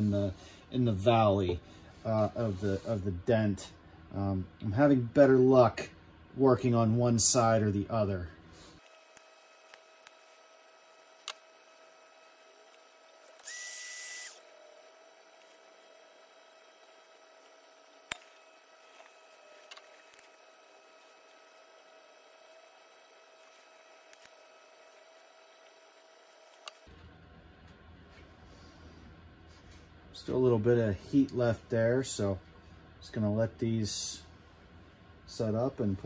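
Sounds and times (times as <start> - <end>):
faint steady whine: 0.0 - 36.0
small clicks: 23.4 - 25.7.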